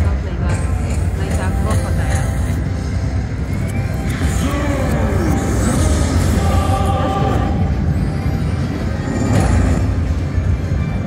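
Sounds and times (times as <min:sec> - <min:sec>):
voices: 0:00.0 - 0:02.6, 0:04.2 - 0:07.8
slot machine music and effects: 0:00.0 - 0:11.0.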